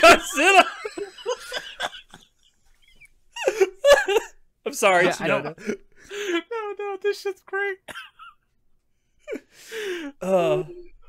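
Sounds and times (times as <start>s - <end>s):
man laughing out loud: 0.0s - 2.4s.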